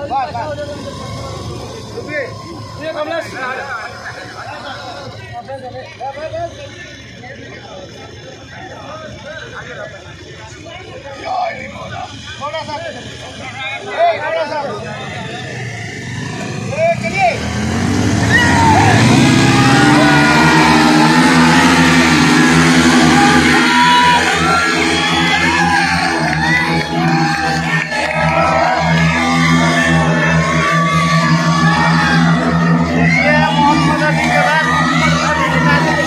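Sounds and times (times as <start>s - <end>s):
crowd shouting and cheering: 0.0s - 36.0s
motorcycle engines revving: 0.0s - 36.0s.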